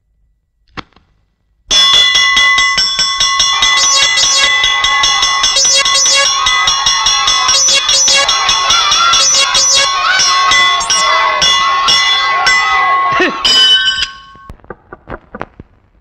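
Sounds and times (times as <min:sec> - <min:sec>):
metal bell clanging: 0:10.1 - 0:14.5.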